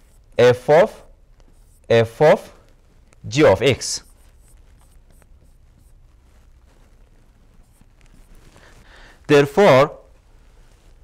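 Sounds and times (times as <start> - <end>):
stylus scratching on tablet: 0.0 - 11.0.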